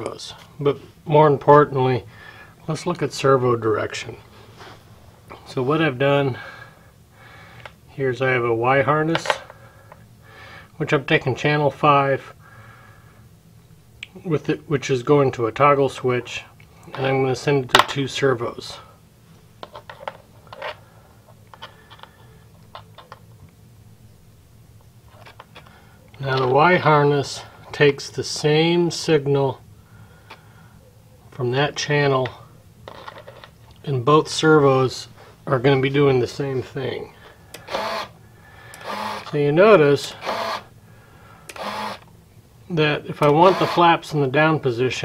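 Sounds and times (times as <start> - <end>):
steady low hum: 0.0 - 45.0
small servos whirring: 37.5 - 39.4, 40.2 - 40.7, 41.4 - 42.1, 43.3 - 43.9.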